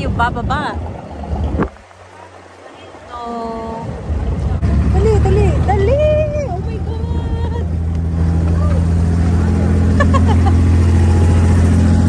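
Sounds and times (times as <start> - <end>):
boat diesel engine humming: 0.0 - 12.0.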